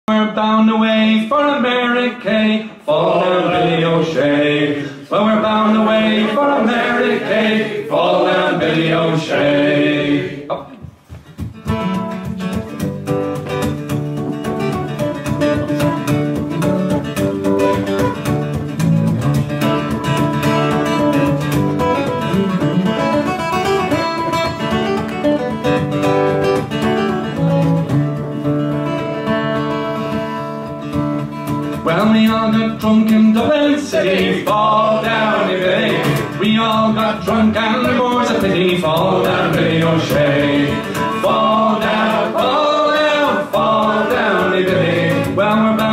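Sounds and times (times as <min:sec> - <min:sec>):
man singing: 0:00.0 - 0:10.8, 0:31.8 - 0:45.9
acoustic guitar strumming: 0:00.2 - 0:45.9.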